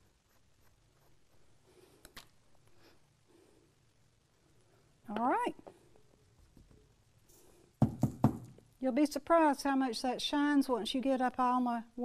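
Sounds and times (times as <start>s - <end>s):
wooden frame knocking on table: 7.8s - 8.5s.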